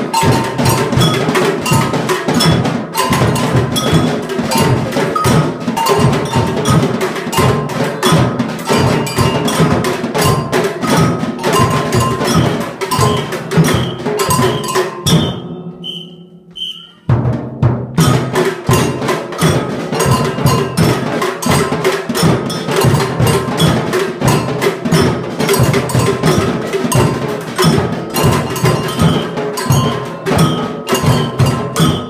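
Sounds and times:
samba percussion band: 0.0s - 32.0s
short high notes: 13.0s - 17.2s.

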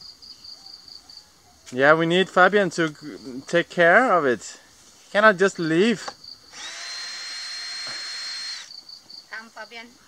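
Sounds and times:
cordless drill whining: 6.5s - 8.7s.

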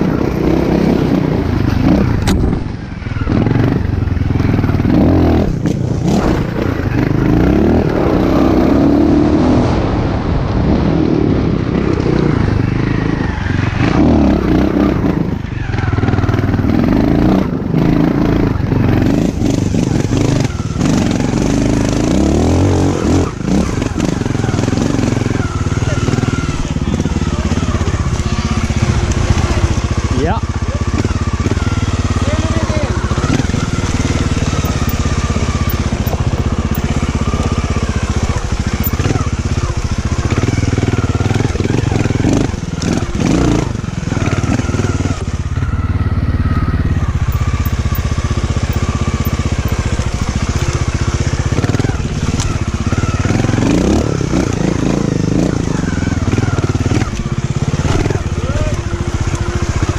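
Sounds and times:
motorcycle engine at low revs: 0.0s - 59.9s.

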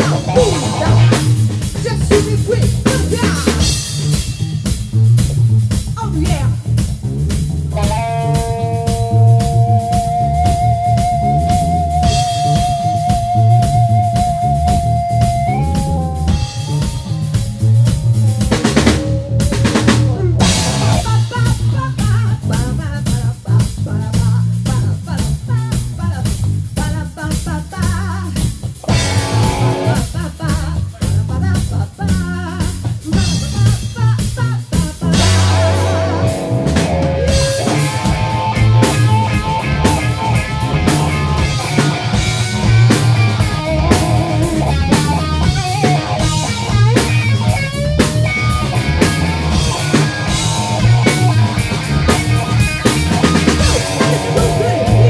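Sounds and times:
rock band playing: 0.0s - 55.0s.

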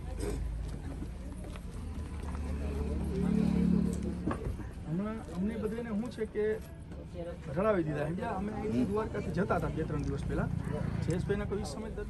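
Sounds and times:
group of people chatting: 0.0s - 12.0s.

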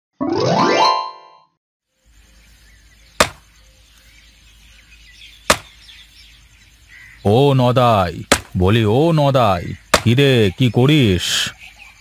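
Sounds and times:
hoe chopping into dry earth: 3.2s - 3.5s, 5.5s - 5.8s, 8.3s - 8.6s, 9.9s - 10.2s.

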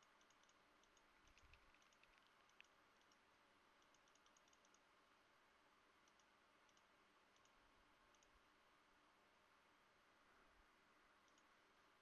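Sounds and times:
faint computer input clicks: 0.0s - 3.2s, 3.8s - 4.8s, 6.0s - 8.4s, 11.2s - 11.5s.

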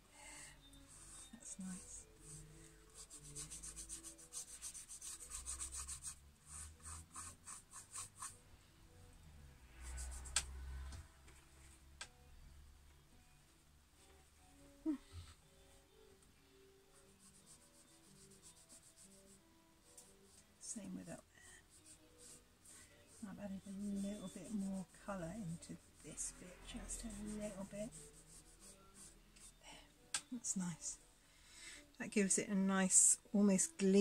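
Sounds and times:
paintbrush dry-brush strokes: 0.8s - 8.4s, 9.7s - 10.6s, 21.7s - 29.6s.

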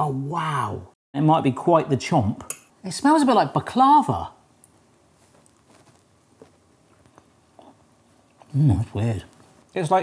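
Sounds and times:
chewing with soft crunches: 4.6s - 8.5s.

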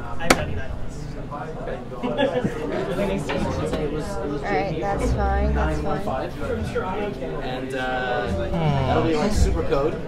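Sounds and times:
voices chattering: 0.9s - 10.0s.

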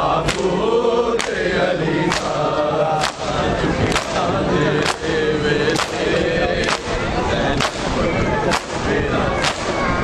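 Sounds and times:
men chanting a lament: 0.0s - 10.0s
hands slapping bare chests: 1.2s - 1.4s, 2.1s - 2.4s, 3.0s - 3.3s, 3.9s - 4.2s, 4.8s - 5.1s, 5.7s - 6.9s, 7.6s - 7.9s, 8.5s - 8.8s, 9.4s - 9.7s.

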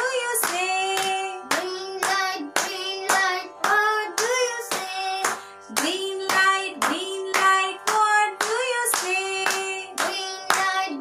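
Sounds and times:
boy and woman singing: 0.0s - 11.0s
hands clapping: 0.3s - 11.0s.

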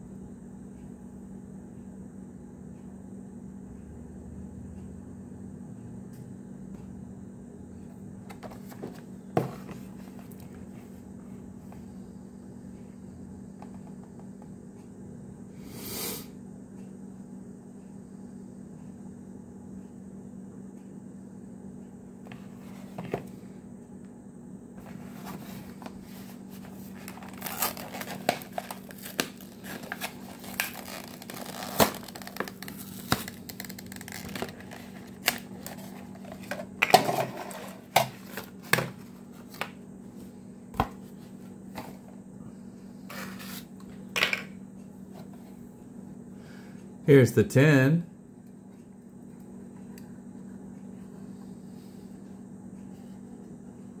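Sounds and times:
plastic packaging crinkling: 26.6s - 36.6s.

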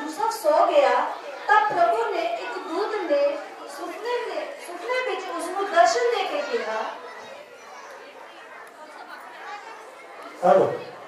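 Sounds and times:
background chatter in a hall: 0.0s - 11.0s.

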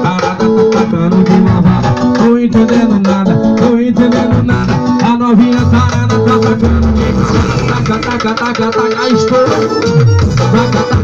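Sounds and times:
sung syllable: 3.2s - 8.4s
loud dance music with heavy bass: 4.1s - 11.0s.

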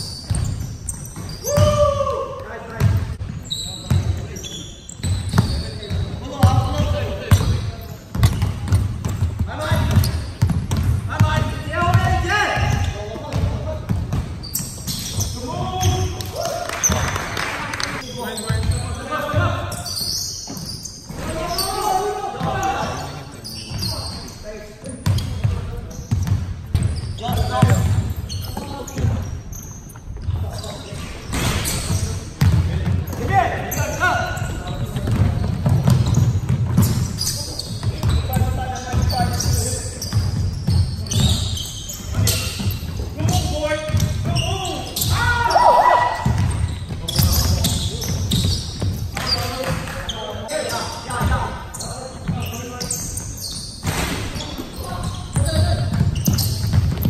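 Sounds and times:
basketball bouncing on hardwood floor: 5.0s - 14.4s, 32.4s - 33.2s, 34.6s - 37.1s, 42.1s - 44.4s, 46.2s - 49.9s, 55.0s - 57.0s.

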